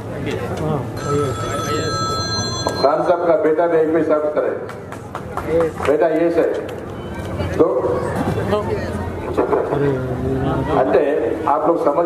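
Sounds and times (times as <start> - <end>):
high electronic ringing tone: 1.0 - 3.6.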